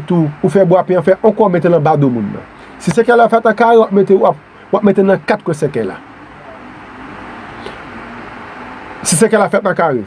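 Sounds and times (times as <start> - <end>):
soft hiss and hum: 0.0 - 10.0.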